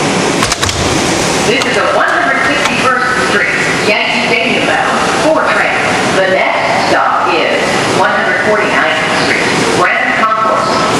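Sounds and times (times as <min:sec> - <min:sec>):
subway car running noise: 0:00.0 - 0:10.9
recorded announcement voice: 0:01.5 - 0:10.9.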